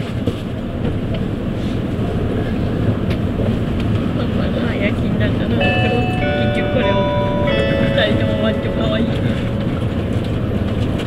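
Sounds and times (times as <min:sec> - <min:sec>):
train running rumble: 0:00.0 - 0:11.0.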